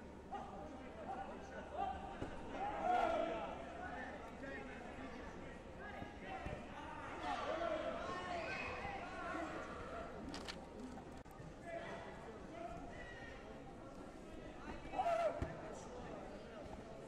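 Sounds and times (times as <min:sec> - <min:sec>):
indistinct voices in hall: 0:00.0 - 0:17.0.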